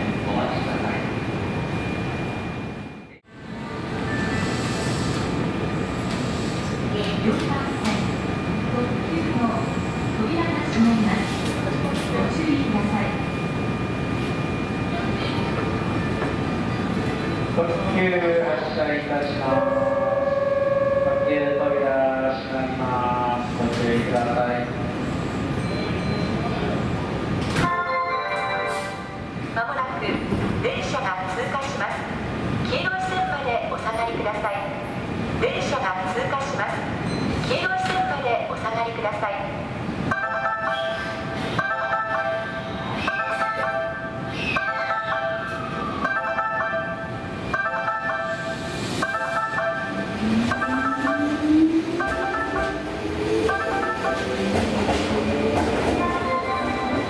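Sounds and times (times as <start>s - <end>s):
station announcement: 0.0s - 57.0s.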